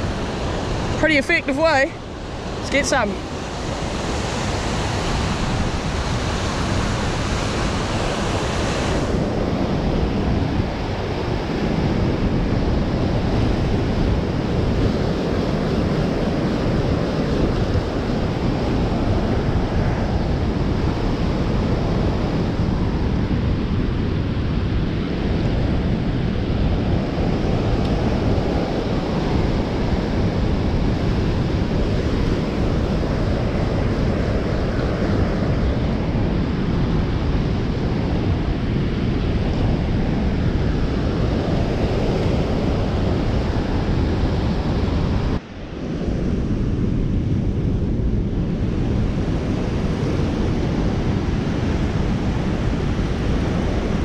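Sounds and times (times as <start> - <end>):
white water rushing: 0.0 - 10.8
wind buffeting microphone: 0.0 - 54.0.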